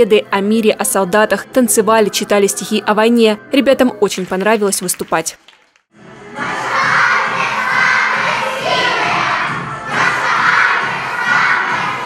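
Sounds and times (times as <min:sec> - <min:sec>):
children shouting and cheering: 0:06.3 - 0:12.0.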